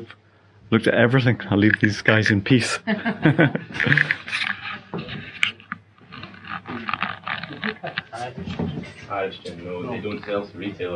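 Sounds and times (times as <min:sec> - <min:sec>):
people talking: 0:00.0 - 0:05.6, 0:06.2 - 0:10.9.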